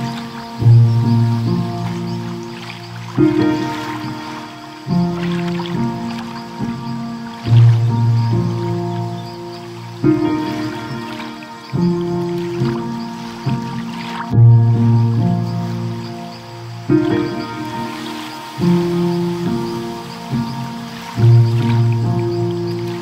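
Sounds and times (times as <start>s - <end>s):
ocean waves: 0.0s - 23.0s
soft piano chords: 0.0s - 23.0s.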